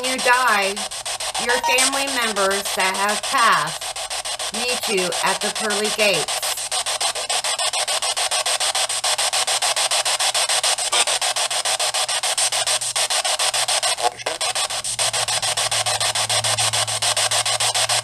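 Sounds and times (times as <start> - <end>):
pulsing radio static: 0.0 - 18.0.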